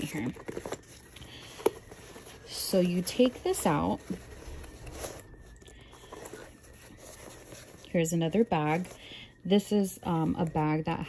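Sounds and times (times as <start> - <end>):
backpack rustling and scuffing: 0.0 - 9.0.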